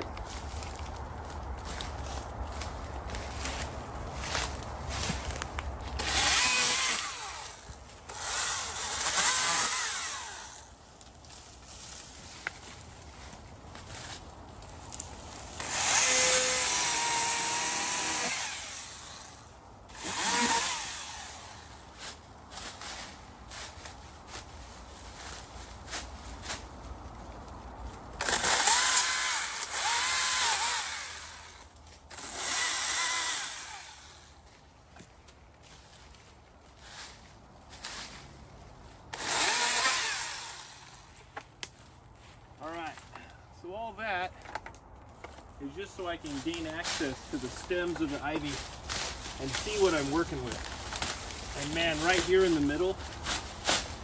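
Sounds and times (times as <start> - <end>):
chainsaw revving: 6.0 - 10.7, 15.6 - 21.8, 28.2 - 31.6, 32.2 - 34.3, 39.1 - 41.0.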